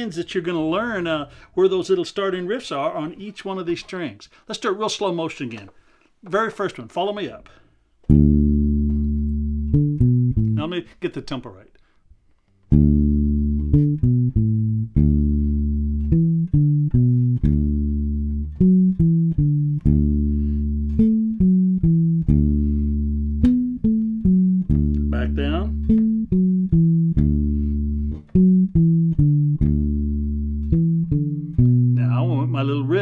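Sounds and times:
electric bass plucked notes: 8.1s - 10.8s, 12.7s - 33.0s.

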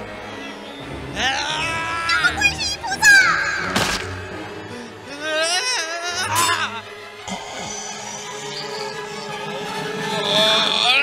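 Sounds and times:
film score of held tones: 0.0s - 11.0s.

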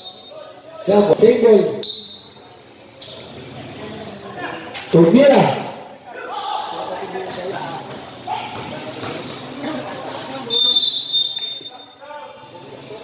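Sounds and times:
referee's whistle blasts: 0.0s - 0.6s, 1.7s - 2.4s, 10.5s - 12.0s
court noise: 0.0s - 13.0s
voices: 0.0s - 13.0s.

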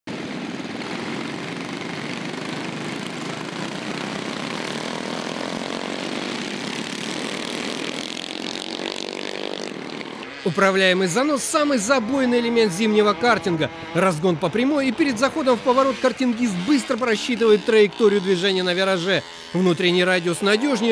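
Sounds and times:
racing kart engines buzzing: 0.1s - 20.9s.

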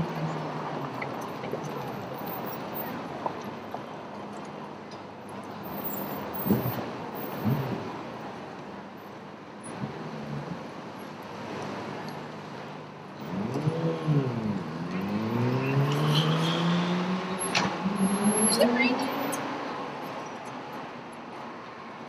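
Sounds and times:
street traffic hum: 0.0s - 22.0s
vehicle engine accelerating: 13.2s - 19.9s.

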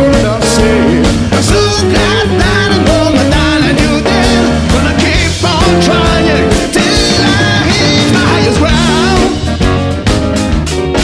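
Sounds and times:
drum kit beating: 0.0s - 11.0s
rock band playing: 0.0s - 11.0s.

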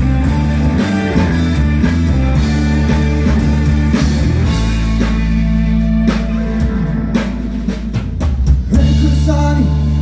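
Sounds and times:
drum hits: 0.0s - 9.4s
live rock band playing: 0.0s - 10.0s.

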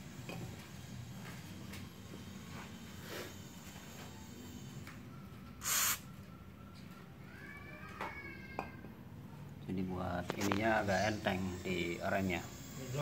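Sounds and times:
aerosol can spraying: 5.6s - 6.1s.

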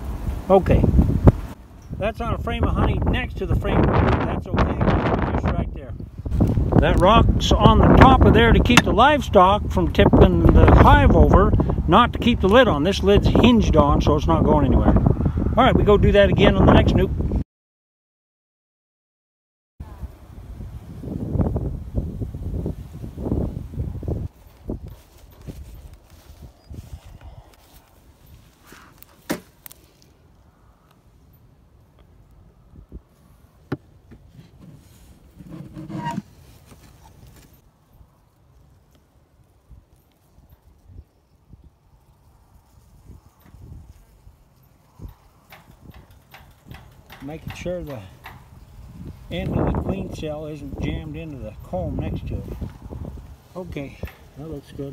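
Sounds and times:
microphone handling rumble: 0.6s - 17.4s, 45.0s - 54.9s.

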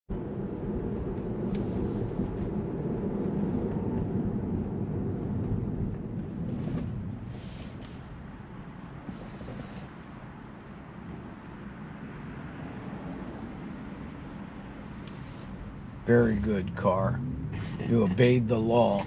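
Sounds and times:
tyre and road noise in car: 0.1s - 19.0s.

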